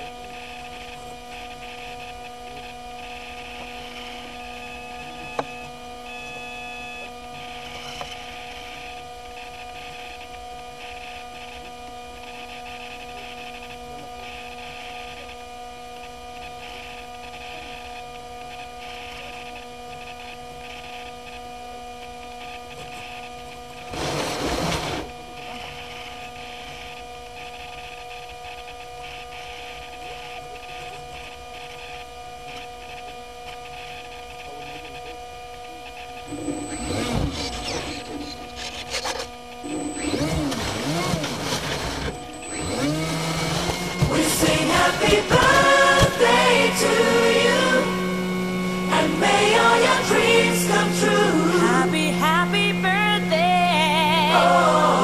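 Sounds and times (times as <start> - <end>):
electrical hum and whine: 0.0 - 55.0.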